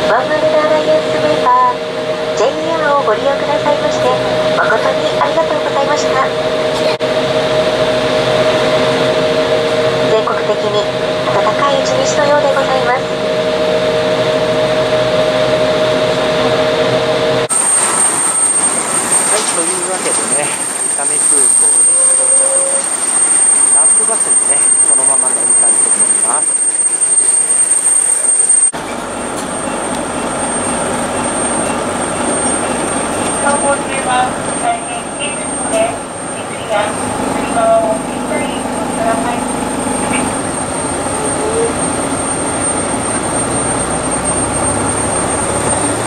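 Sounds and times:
two-note cabin hum: 0:00.0 - 0:29.0
high-pitched jet turbine whine: 0:00.0 - 0:46.0
jet engine noise: 0:00.0 - 0:46.0.

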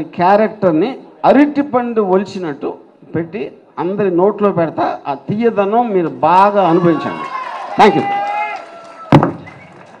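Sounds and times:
thump on handheld microphone: 0:09.1 - 0:09.5.

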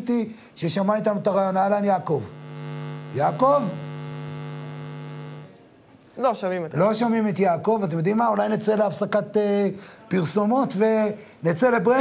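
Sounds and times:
electrical mains hum: 0:01.4 - 0:05.6.

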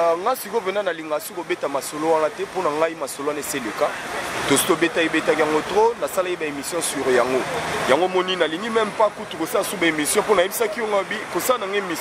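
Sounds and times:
people talking: 0:00.0 - 0:12.0
steady background noise: 0:00.0 - 0:12.0.

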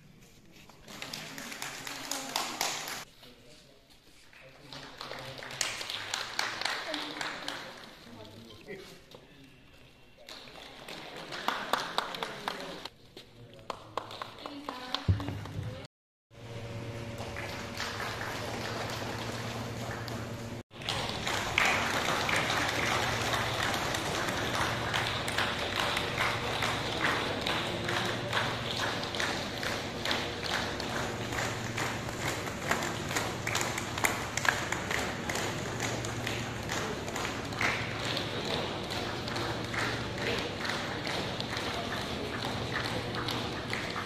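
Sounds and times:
crowd applauding: 0:00.8 - 0:03.1, 0:04.4 - 0:08.0, 0:10.2 - 0:12.9, 0:16.8 - 0:44.0.

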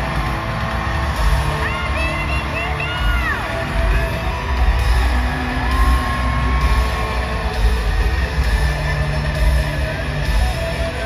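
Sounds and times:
live band music over pa: 0:00.0 - 0:11.0.

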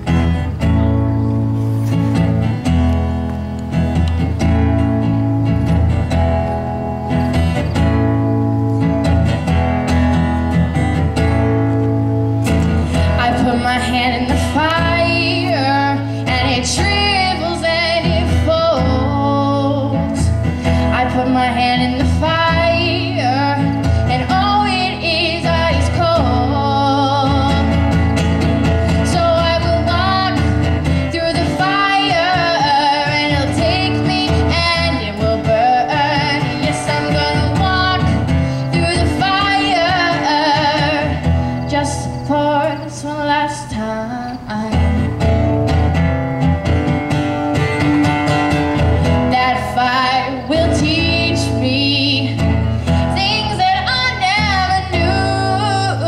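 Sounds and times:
acoustic guitar: 0:00.0 - 0:56.0
girl singing: 0:13.1 - 0:28.0, 0:28.9 - 0:45.0, 0:49.2 - 0:56.0.

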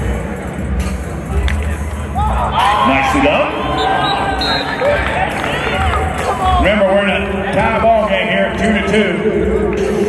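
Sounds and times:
people shouting and cheering: 0:01.3 - 0:10.0.

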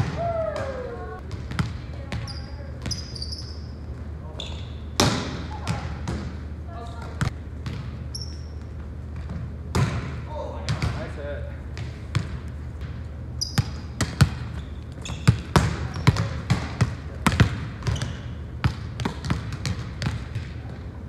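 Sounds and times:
volleyballs smacking and bouncing: 0:00.0 - 0:03.1, 0:04.9 - 0:21.0
high shoe squeaks: 0:02.2 - 0:05.0, 0:08.1 - 0:08.8, 0:13.4 - 0:16.3, 0:17.8 - 0:18.4.

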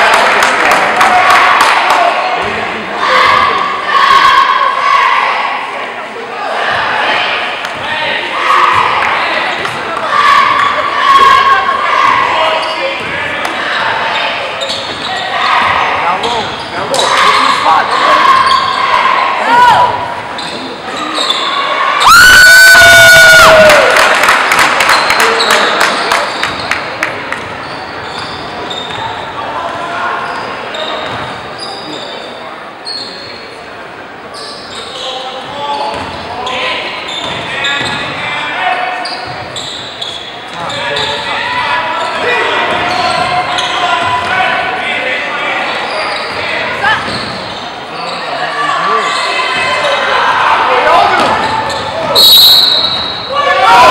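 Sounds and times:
sneakers squeaking: 0:06.6 - 0:22.6, 0:24.9 - 0:33.6, 0:34.3 - 0:50.3, 0:51.0 - 0:53.9.

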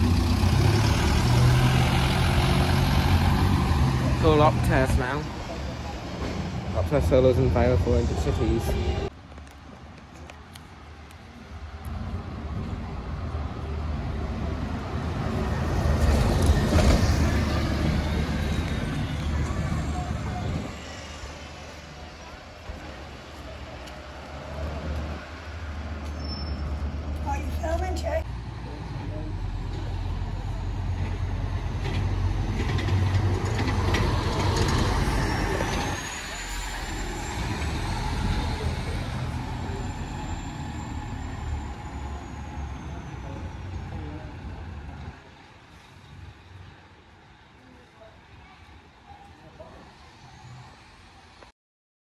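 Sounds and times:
bus engine rumble: 0:00.0 - 0:48.1.

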